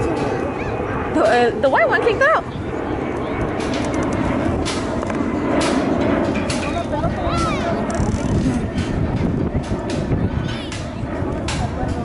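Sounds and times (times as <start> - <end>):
low rumbling background noise: 0.0 - 12.0
faint distant voices: 5.2 - 12.0.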